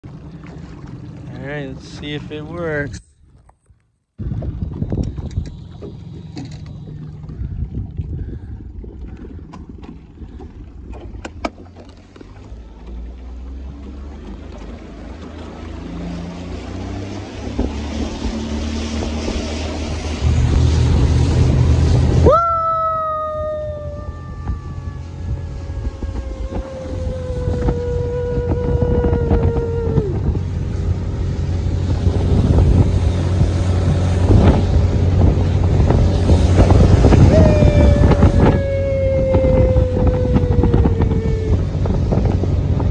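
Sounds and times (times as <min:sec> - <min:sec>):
water rushing past hull: 0:00.0 - 0:03.5, 0:04.2 - 0:42.9
outboard motor running: 0:00.0 - 0:42.9
wind on microphone: 0:04.2 - 0:12.6, 0:13.6 - 0:42.9
high whine falling in pitch: 0:15.7 - 0:42.9.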